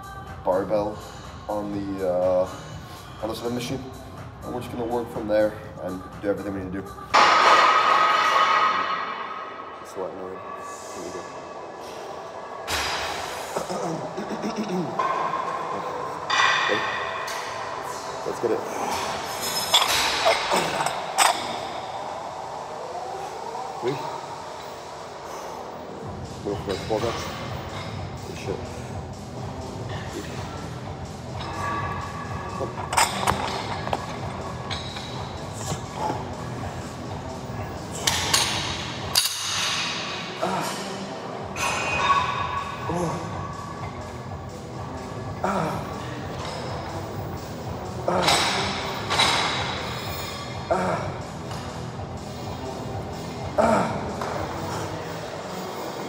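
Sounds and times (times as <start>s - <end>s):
gym music: 0.0s - 9.8s, 12.7s - 22.6s, 26.0s - 56.0s
dumbbell plates clinking: 18.9s - 21.7s, 31.3s - 36.2s.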